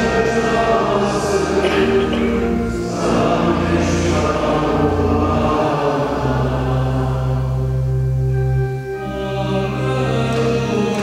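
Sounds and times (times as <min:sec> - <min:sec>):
organ bass notes: 0:00.0 - 0:11.0
voices singing a chant: 0:00.0 - 0:11.0.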